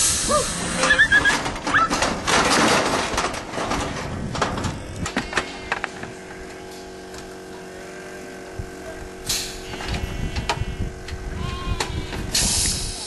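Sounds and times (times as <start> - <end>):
metal gates clanking: 0.8 - 5.8
short hiss: 9.2 - 9.6, 12.3 - 13.0
sheep bleating: 9.6 - 12.2.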